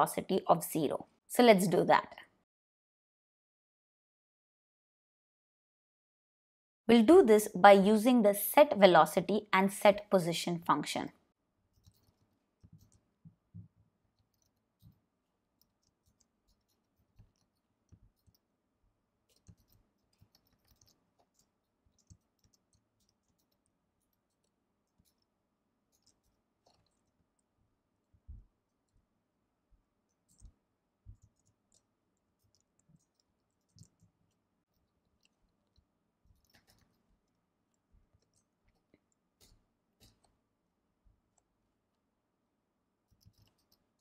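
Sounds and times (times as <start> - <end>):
computer keyboard typing: 15.6 - 18.5, 19.3 - 25.3, 25.9 - 27.1, 30.1 - 37.4, 43.1 - 44.0.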